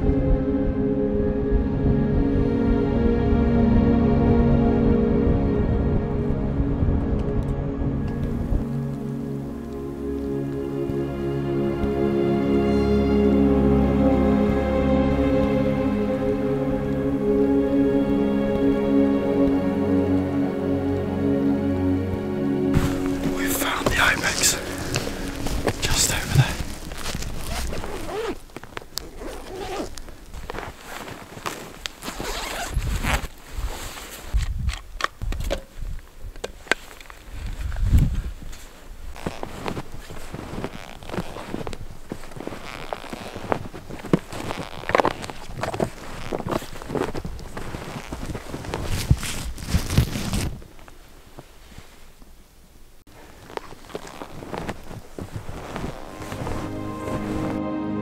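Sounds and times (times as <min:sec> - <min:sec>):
fabric rustling: 0:22.7 - 0:34.4, 0:36.8 - 0:52.4, 0:53.0 - 0:57.6
zipper runs: 0:24.3 - 0:33.7, 0:39.2 - 0:50.6, 0:53.3 - 0:57.4.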